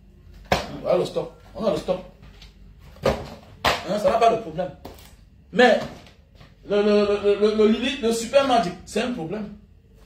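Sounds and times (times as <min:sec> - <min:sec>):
man speaking: 0:00.6 - 0:02.1, 0:06.6 - 0:09.7.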